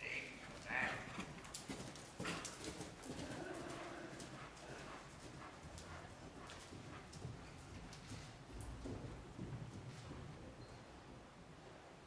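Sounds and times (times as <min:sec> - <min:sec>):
horse hooves on arena footing: 0:00.0 - 0:11.8.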